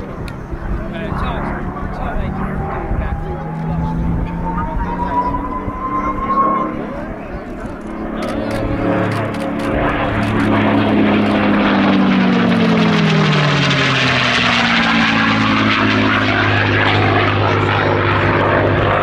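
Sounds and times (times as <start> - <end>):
propeller plane engine passing: 0.0 - 19.0.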